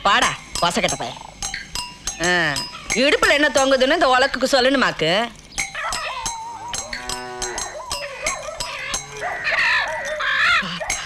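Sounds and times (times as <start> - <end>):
voices and vocal sounds: 2.0 - 11.0.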